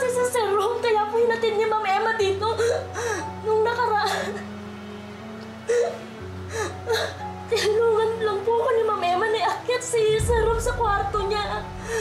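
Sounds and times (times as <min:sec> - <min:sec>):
background music score: 0:00.0 - 0:12.0.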